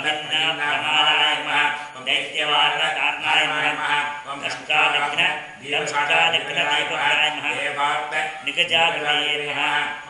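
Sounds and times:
man chanting mantras: 0.0s - 10.0s.

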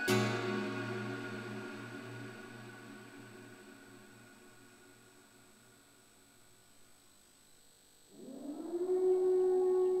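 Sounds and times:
electronic siren-like tone: 8.1s - 10.0s.

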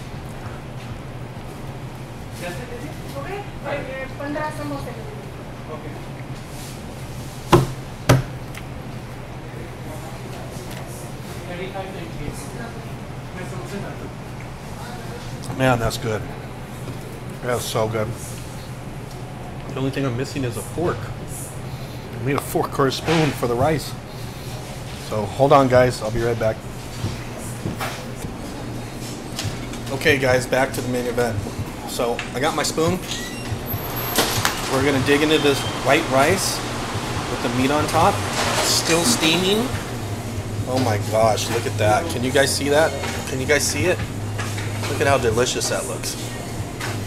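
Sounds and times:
low room hum: 0.0s - 47.0s
sharp knocks: 7.5s - 8.4s.

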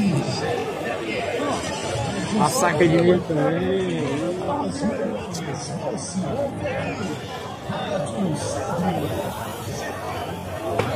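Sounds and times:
chatter of people: 0.0s - 10.9s.

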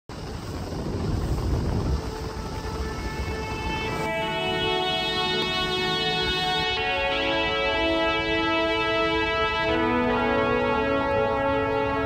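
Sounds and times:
wind and boat running noise: 0.1s - 12.0s
music: 0.9s - 12.0s.

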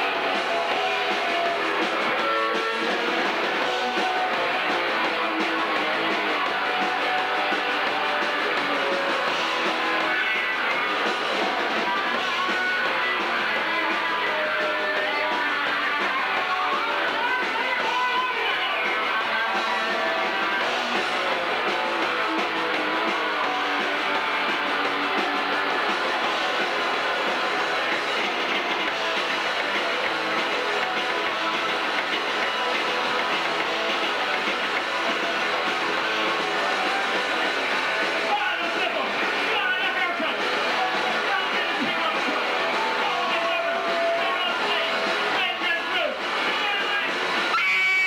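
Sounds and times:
punk rock band playing live: 0.0s - 48.0s.

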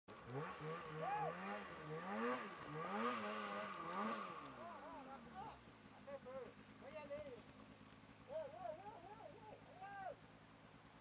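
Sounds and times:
distant snowmobile engine revving: 0.1s - 9.9s.

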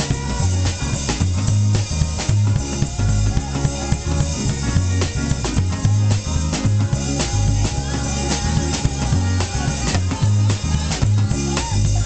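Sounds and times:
bass guitar notes: 0.0s - 12.0s
drum kit: 0.0s - 12.0s.

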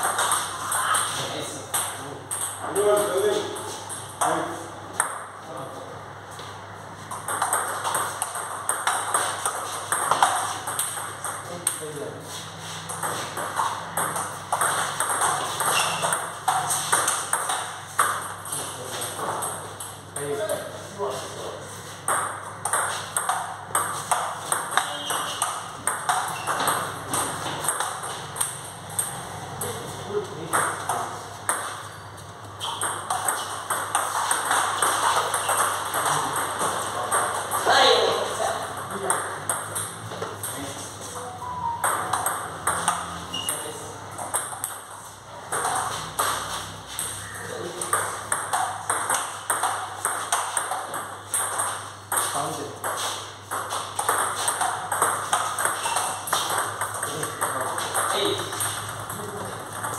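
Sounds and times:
distant ping pong ball clicks: 41.2s - 59.9s.

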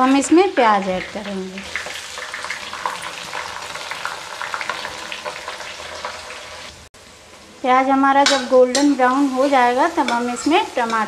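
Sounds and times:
onions sizzling in hot oil: 0.0s - 11.0s.

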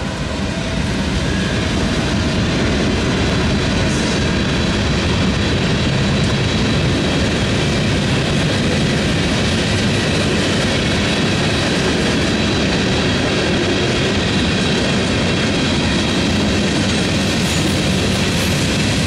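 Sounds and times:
freight train rolling past: 0.0s - 19.0s
steel wheels on rail: 0.0s - 19.0s.

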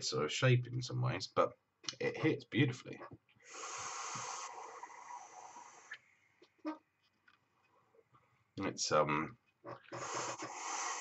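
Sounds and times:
hiss of air drawn through vape: 3.5s - 6.0s, 9.9s - 11.0s.

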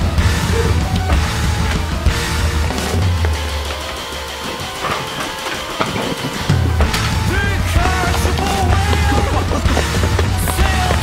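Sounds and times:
heavy bass: 0.0s - 4.4s, 6.5s - 11.0s
rock music with guitar: 0.0s - 11.0s.

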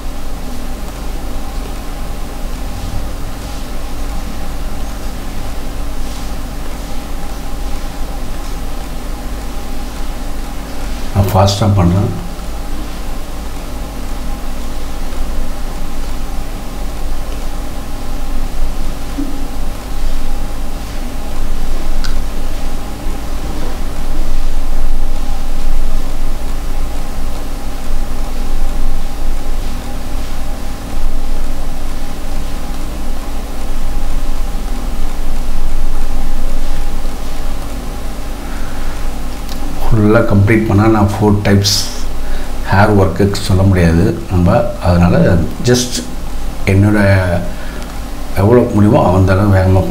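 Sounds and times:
background hiss: 0.0s - 49.9s.

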